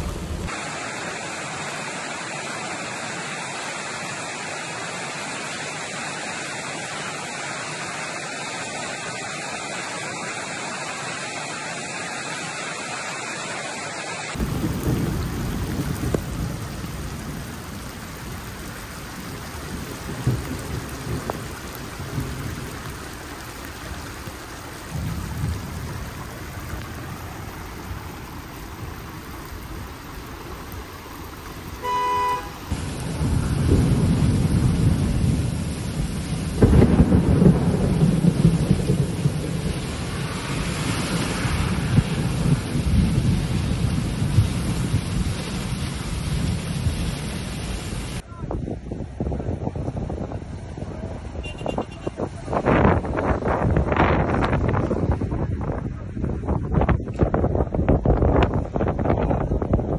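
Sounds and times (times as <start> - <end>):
heavy rain: 0.0 - 59.9
wind rumbling on microphone: 14.3 - 59.9
short horn-like beep: 31.8 - 32.6, 51.4 - 52.2.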